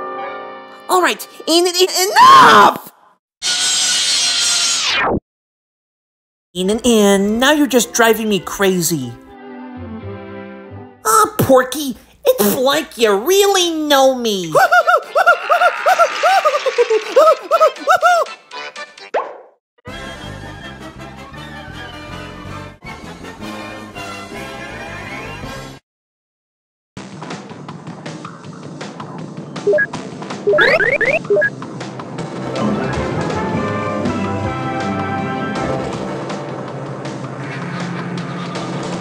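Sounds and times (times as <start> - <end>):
orchestral cartoon music: 7.3 - 11.1, 19.9 - 25.7, 32.3 - 36.6
cartoon pop with upward swoop: 19.1 - 19.6, 30.5 - 31.5.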